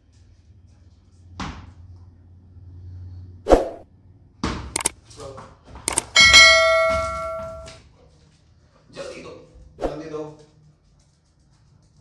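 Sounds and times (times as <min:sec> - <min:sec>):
sharp clicks: 0:04.8 - 0:05.0, 0:05.9 - 0:06.2
bright bell chime: 0:06.2 - 0:07.7.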